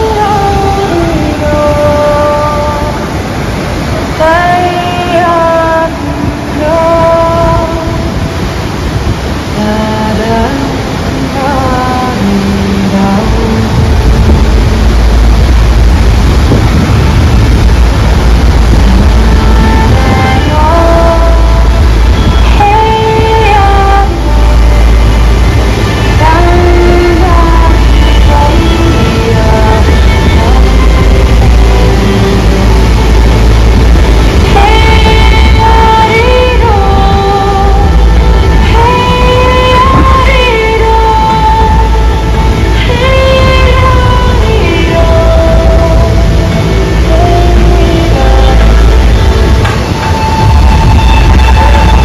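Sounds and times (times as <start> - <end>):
woman singing long notes: 0.0 - 15.2, 18.3 - 52.0
waterfall roaring: 0.0 - 52.0.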